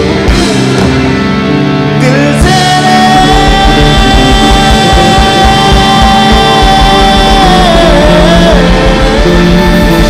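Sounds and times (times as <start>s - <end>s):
distorted guitars: 0.0s - 10.0s
rock band playing loud: 0.0s - 10.0s.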